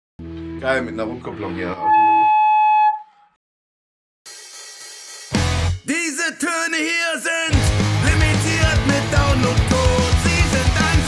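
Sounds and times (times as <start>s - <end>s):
guitar amp feedback whistling: 1.8s - 3.3s
rock band playing: 4.3s - 5.9s, 7.5s - 11.0s
person singing: 5.8s - 11.0s.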